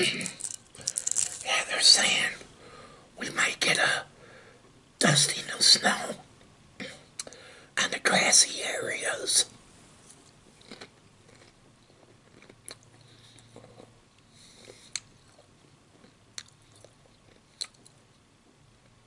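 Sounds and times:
close chewing: 10.6s - 13.9s
wet mouth clicks: 17.6s - 18.0s.

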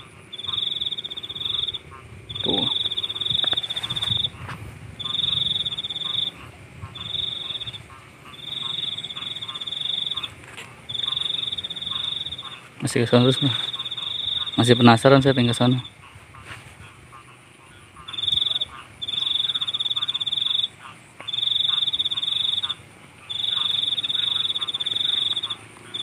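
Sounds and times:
cricket trilling: 0.0s - 26.0s
faint insect hum: 0.0s - 26.0s.

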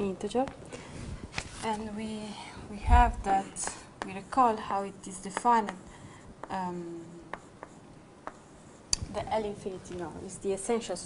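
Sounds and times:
soft taps writing on board: 3.6s - 4.2s, 5.3s - 5.8s, 7.3s - 9.2s.

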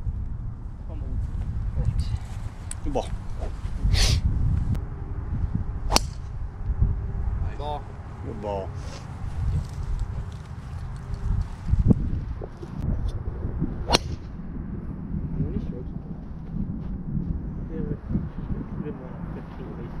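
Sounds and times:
wind rumble on microphone: 0.0s - 20.0s
golf club striking ball: 5.9s - 6.4s, 13.9s - 14.3s.

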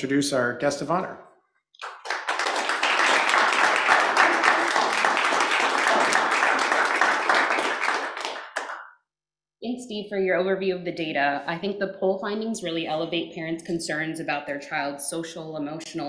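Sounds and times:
audience applauding: 1.8s - 8.9s.

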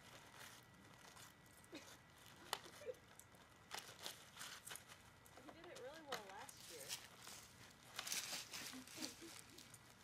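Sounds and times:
wrapping paper crackling and ripping: 0.0s - 10.0s.

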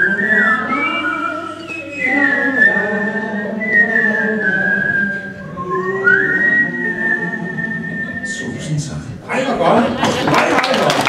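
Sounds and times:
man whistling a melody: 0.0s - 8.5s.

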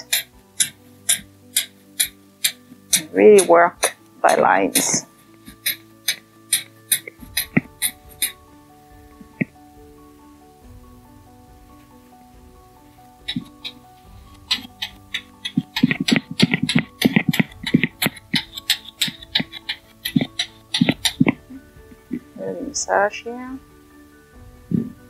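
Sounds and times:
soft held chords: 0.0s - 25.0s.

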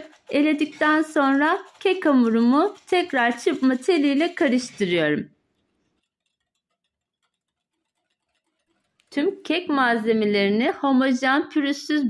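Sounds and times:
whisk striking glass bowl: 0.0s - 5.1s, 5.8s - 10.0s.

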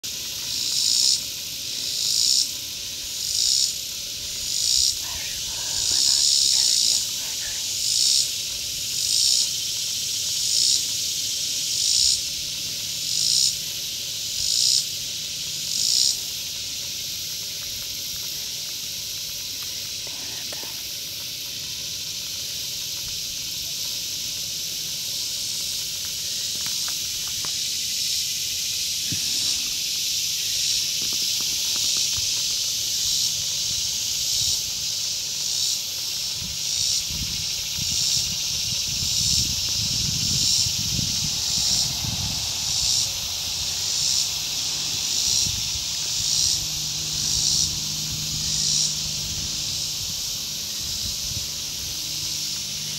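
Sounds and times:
cicadas buzzing in chorus: 0.0s - 52.9s.

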